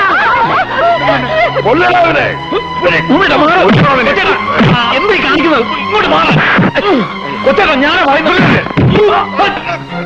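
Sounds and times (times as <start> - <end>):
men shouting and yelling: 0.0 - 10.0.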